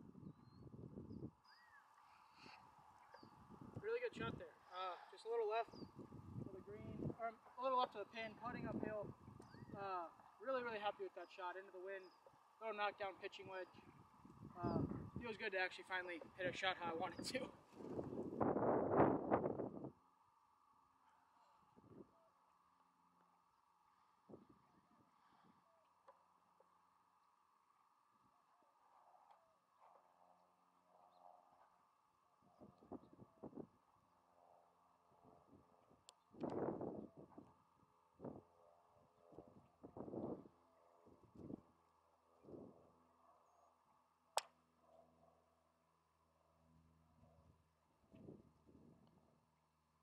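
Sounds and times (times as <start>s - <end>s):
faint steady hum: 0.0s - 50.0s.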